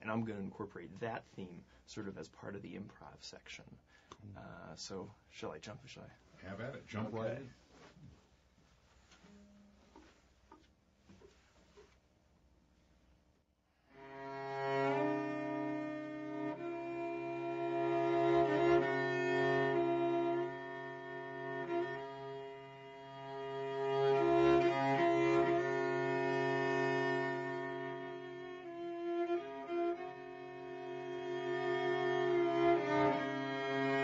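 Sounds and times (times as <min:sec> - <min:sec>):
bowed cello: 0:13.9 - 0:34.0.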